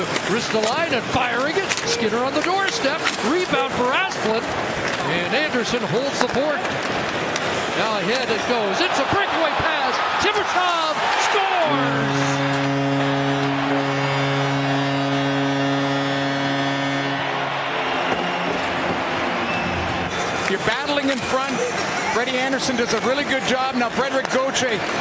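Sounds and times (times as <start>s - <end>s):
crowd noise: 0.0s - 25.0s
goal horn long blast: 0.4s - 4.0s, 10.2s - 21.5s.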